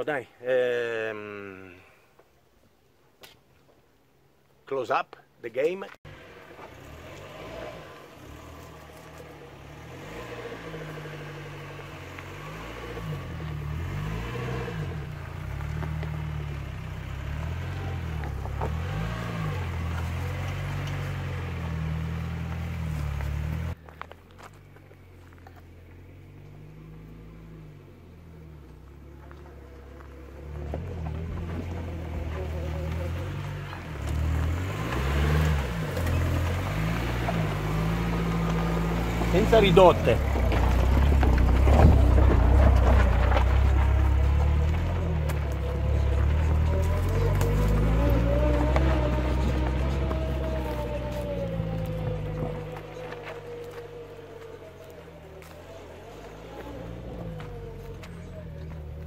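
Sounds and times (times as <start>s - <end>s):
van engine labouring uphill: 6.0s - 59.0s.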